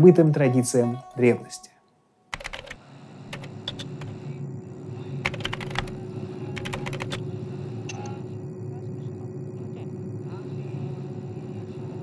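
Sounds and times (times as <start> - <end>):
steady low hum: 2.0 - 12.0
keyboard typing: 2.3 - 4.2, 5.2 - 6.0, 6.6 - 7.2.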